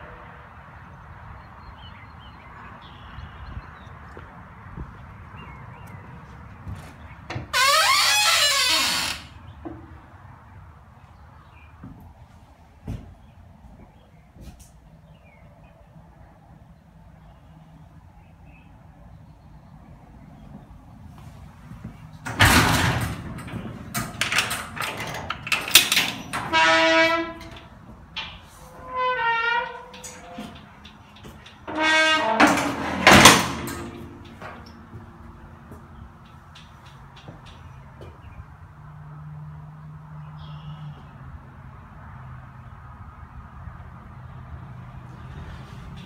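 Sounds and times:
machinery rumbling hum: 19.3s - 38.4s
loud scraping rattle: 22.2s - 34.7s.

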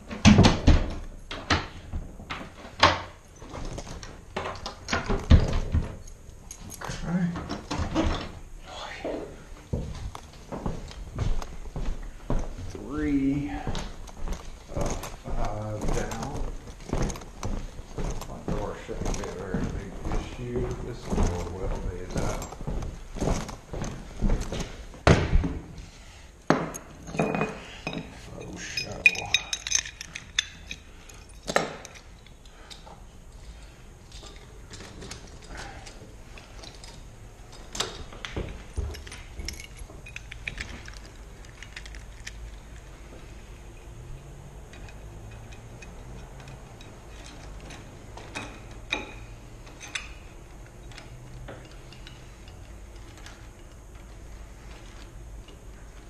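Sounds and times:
keys and tools clinking: 0.9s - 8.6s, 9.9s - 25.0s, 26.7s - 56.0s.

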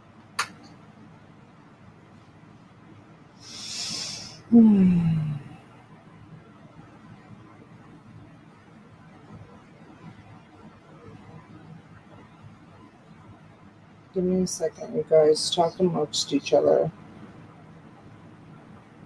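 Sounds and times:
woman's breathy hiss: 3.4s - 4.5s.

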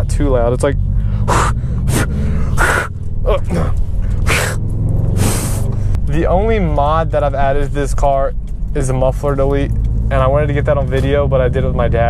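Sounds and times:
car engine droning: 0.0s - 12.0s
person breathing sharply: 0.9s - 2.9s, 5.2s - 6.0s.

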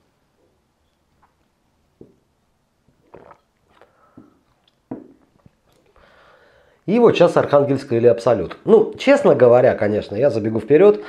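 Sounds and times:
man chewing a snack: 3.0s - 5.9s
man breathing: 3.8s - 4.5s, 5.9s - 6.8s.

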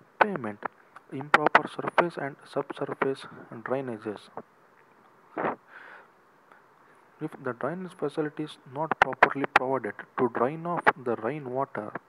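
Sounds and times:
man's voice: 0.1s - 4.4s, 7.2s - 12.0s
sharp breath noise: 5.3s - 7.2s
soft inhale: 5.3s - 7.2s.

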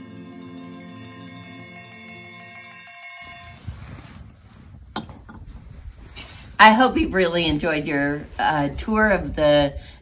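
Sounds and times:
held music chord: 0.0s - 4.0s
wind rumble on microphone: 3.4s - 10.0s.

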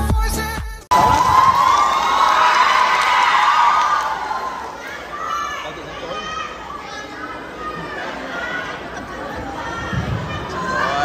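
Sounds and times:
audience cheering: 0.9s - 6.6s.

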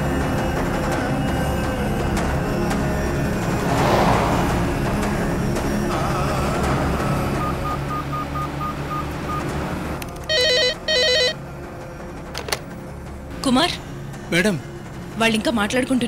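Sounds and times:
background music score: 0.0s - 10.0s
desk telephone ringing: 10.3s - 11.4s.

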